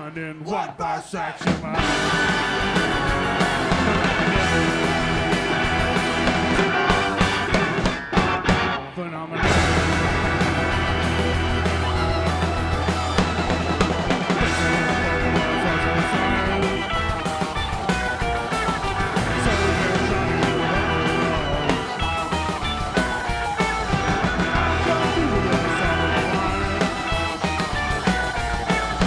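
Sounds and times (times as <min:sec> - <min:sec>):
live rock band playing: 0:01.6 - 0:29.0.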